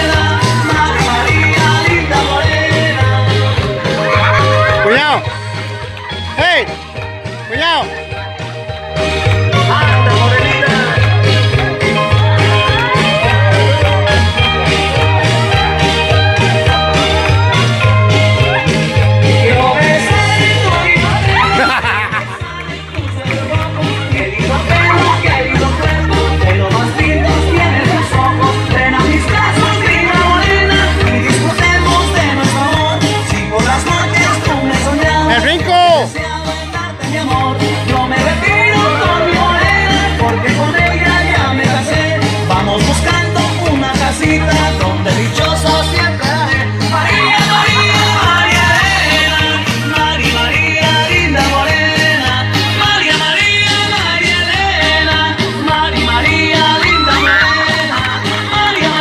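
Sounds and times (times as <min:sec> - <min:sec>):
dance music with singing: 0:00.0 - 0:59.0
pulsing bass beat: 0:00.0 - 0:59.0.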